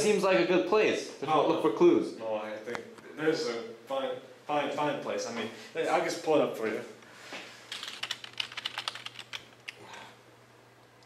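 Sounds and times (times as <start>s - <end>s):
rapid keyboard typing: 7.7s - 9.9s.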